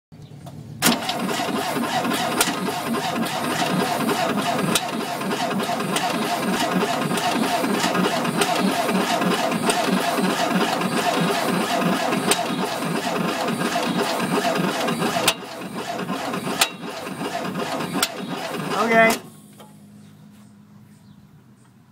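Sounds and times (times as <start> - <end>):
engine valves ticking: 0.8 - 19.3.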